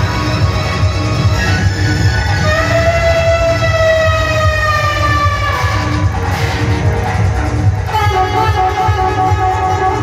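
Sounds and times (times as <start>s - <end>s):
live band music: 0.0s - 10.0s
steady drum beat: 0.0s - 10.0s.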